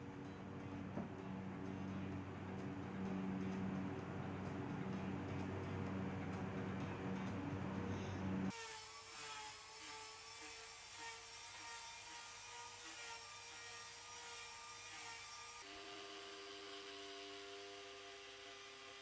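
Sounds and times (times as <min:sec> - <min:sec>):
faint machine whir: 0:00.0 - 0:08.6.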